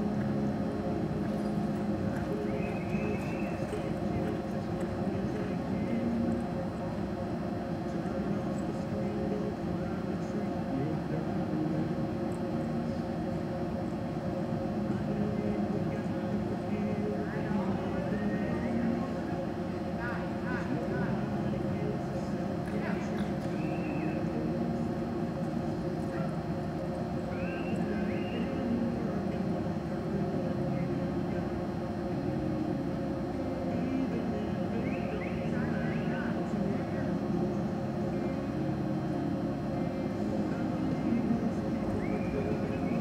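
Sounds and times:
hum: 0.0 - 43.0
murmur of distant voices: 0.0 - 43.0.

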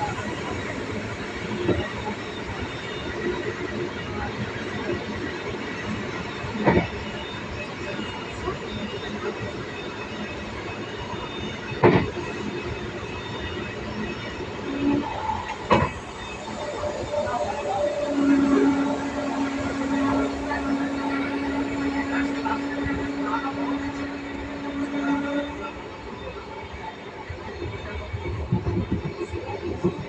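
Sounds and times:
train running noise: 0.0 - 30.0.

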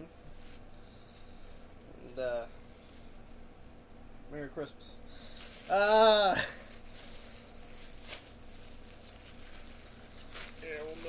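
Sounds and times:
plastic bag rustling: 5.1 - 11.0.

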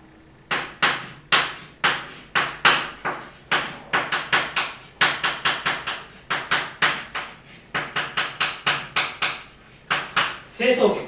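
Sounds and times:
chalk tapping on blackboard: 0.5 - 10.5.

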